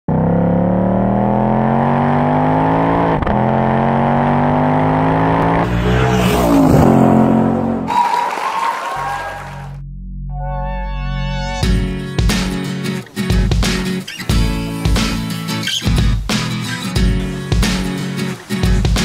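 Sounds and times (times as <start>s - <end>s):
car engine accelerating: 0.1s - 9.8s.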